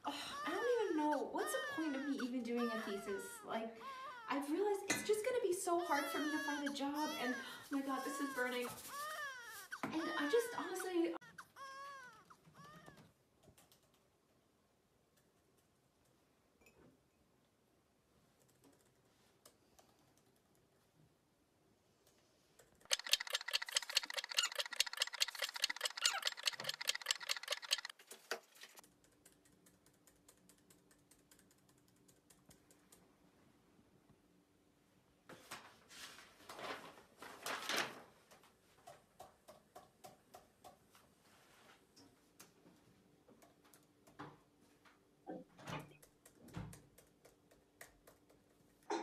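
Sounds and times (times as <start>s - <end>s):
typing on a laptop keyboard: 13.4s - 14.1s, 18.4s - 20.6s, 22.6s - 28.0s, 28.8s - 33.0s.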